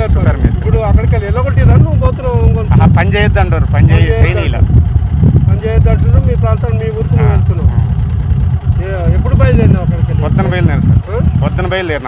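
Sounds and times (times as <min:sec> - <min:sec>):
man speaking into microphone: 0:00.0 - 0:04.6, 0:08.8 - 0:12.0
low rumble: 0:00.0 - 0:12.0.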